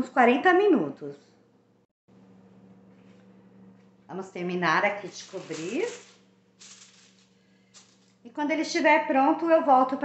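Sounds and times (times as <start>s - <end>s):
aluminium foil crinkling: 4.8s - 8.3s.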